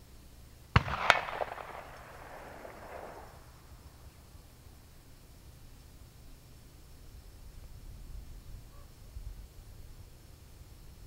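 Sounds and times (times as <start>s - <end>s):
gunshot echoing: 0.8s - 3.7s.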